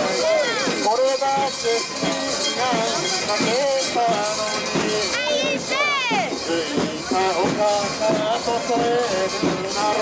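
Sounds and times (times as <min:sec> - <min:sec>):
crowd chanting: 0:00.0 - 0:10.0.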